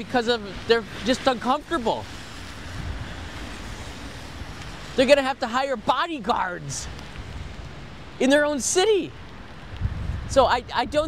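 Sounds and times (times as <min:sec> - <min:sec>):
rain hissing: 0:00.0 - 0:11.0
wind on microphone: 0:02.3 - 0:04.9, 0:09.3 - 0:11.0.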